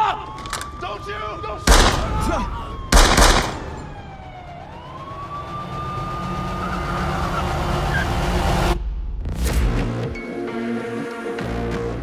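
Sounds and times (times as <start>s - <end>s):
police siren wailing: 0.0s - 8.7s.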